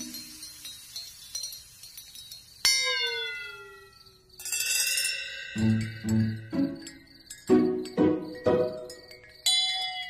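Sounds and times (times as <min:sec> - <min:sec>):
high tinkling chimes: 0:00.0 - 0:10.0.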